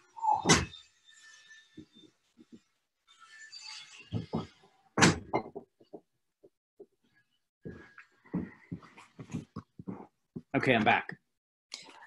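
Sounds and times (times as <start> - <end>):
soft knocks and thumps: 4.2 - 6.1, 7.7 - 11.2.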